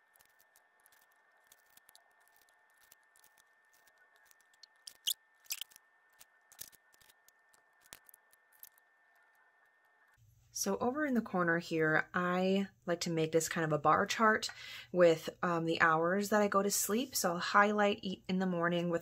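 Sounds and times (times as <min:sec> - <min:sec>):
stickers peeled and pressed: 0:00.0 - 0:09.3.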